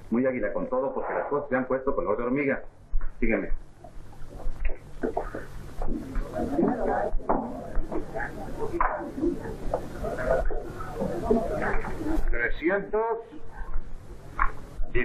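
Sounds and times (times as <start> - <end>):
steady low hum: 0.0 - 15.0
indistinct chatter: 5.0 - 12.5.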